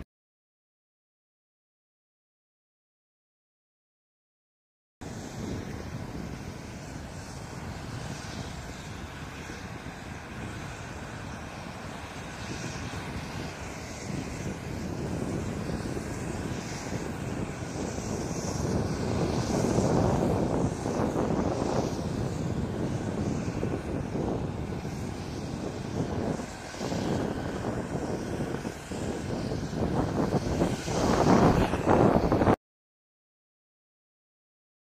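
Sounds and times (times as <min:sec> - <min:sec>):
jet engine rushing: 0:05.0 - 0:32.6.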